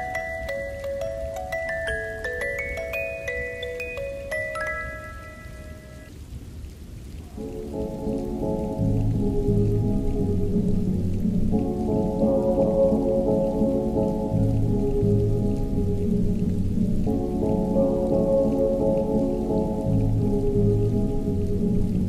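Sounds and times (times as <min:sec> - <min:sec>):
rain falling: 0:00.0 - 0:22.0
muffled music with low chords: 0:07.6 - 0:22.0.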